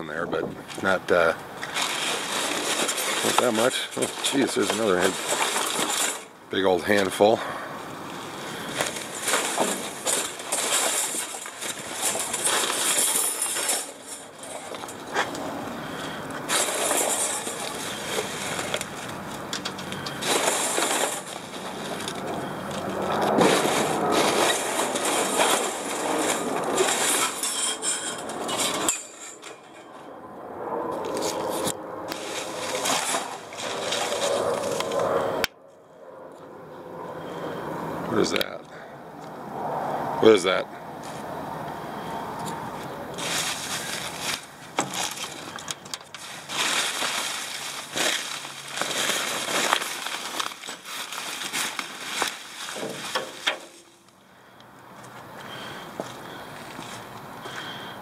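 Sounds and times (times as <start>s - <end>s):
plastic and paper rustling: 1.6s - 6.3s, 8.6s - 15.4s, 16.5s - 28.9s, 31.1s - 35.1s, 43.2s - 54.0s.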